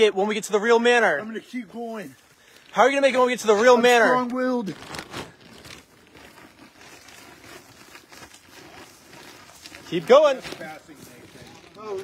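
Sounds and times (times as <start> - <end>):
plastic bag crinkling: 1.6 - 12.0.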